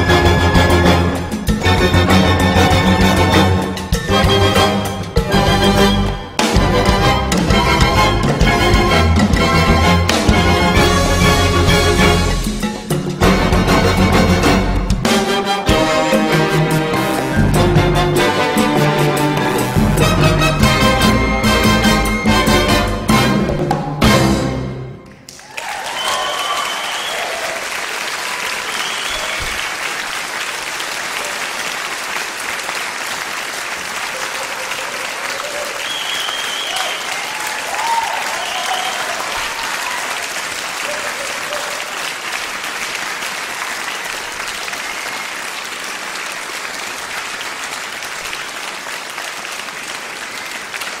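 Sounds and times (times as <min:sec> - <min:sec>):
audience applauding: 0:00.0 - 0:23.0, 0:25.0 - 0:51.0
whistles and cheers: 0:25.4 - 0:29.7, 0:34.1 - 0:41.9, 0:43.9 - 0:45.5.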